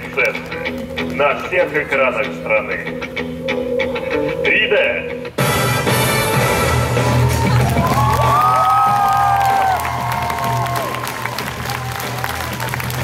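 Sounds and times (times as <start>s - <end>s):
audience cheering and clapping: 7.0s - 13.0s.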